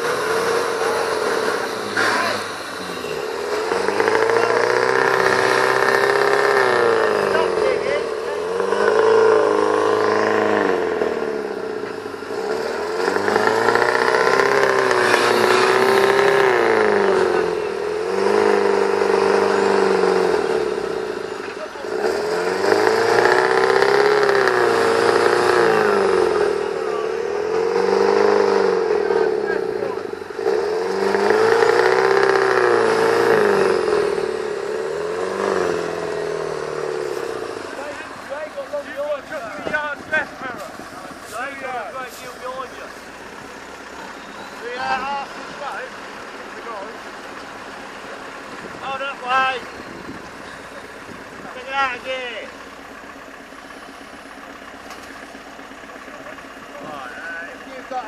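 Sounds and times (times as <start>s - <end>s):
engine revving hard: 0.0s - 52.9s.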